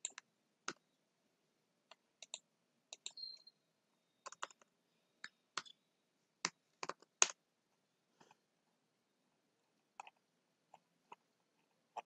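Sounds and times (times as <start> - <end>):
faint high-pitched tone: 3.1 - 6.2.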